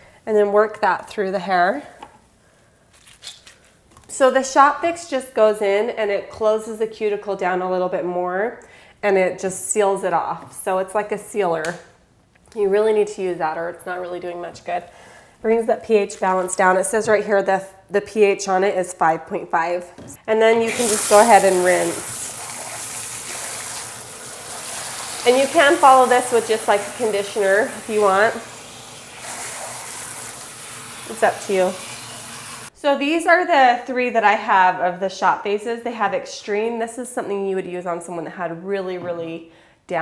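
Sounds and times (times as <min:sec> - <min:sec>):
water spraying into basin: 0:20.6 - 0:32.7
hands rubbing wet hair: 0:20.7 - 0:32.7.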